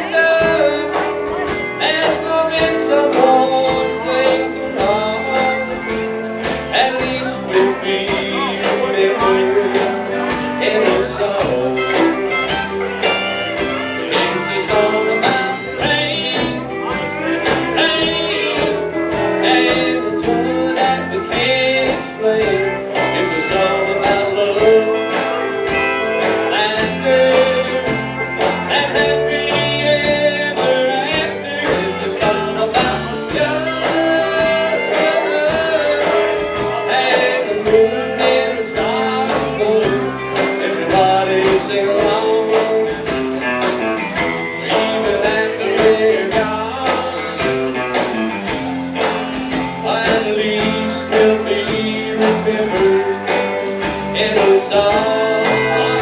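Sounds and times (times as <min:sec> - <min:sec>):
country band playing electric guitars: 0:00.0 - 0:56.0
steady drum beat: 0:00.0 - 0:56.0.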